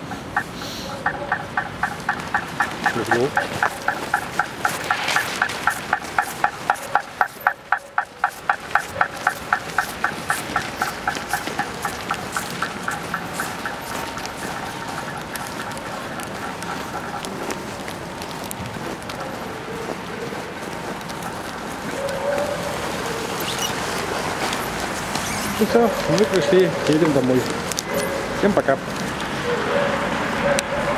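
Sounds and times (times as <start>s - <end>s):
crossing signal beeping rapidly: 0.0s - 17.0s.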